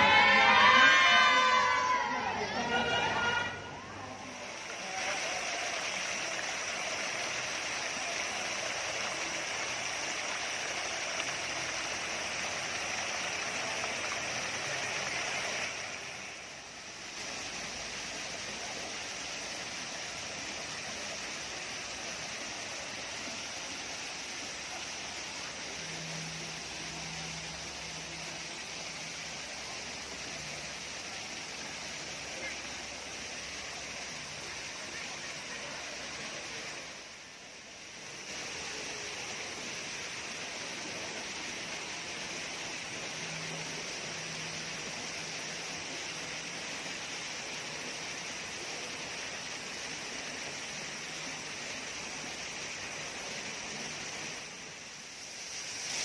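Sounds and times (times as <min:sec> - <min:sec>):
fountain water splashing into pond: 0:00.0 - 0:56.0.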